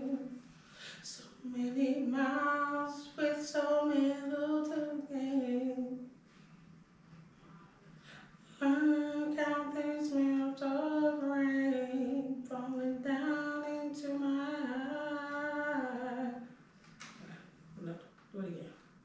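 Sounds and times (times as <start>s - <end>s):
woman singing unaccompanied: 0.0s - 0.4s, 1.0s - 6.1s, 8.5s - 16.5s.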